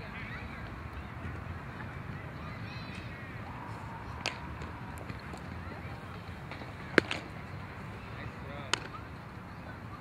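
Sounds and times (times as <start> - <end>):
ball smacking into glove: 6.5 - 7.3.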